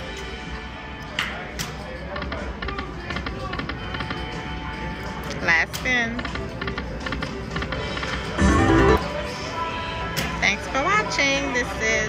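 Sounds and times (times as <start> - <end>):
background chatter: 0.0 - 12.0
slot machine music and chimes: 7.8 - 9.2.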